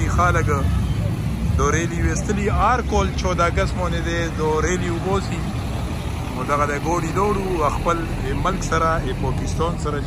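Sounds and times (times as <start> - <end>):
road traffic rumble: 0.0 - 10.0
truck passing close: 0.0 - 10.0.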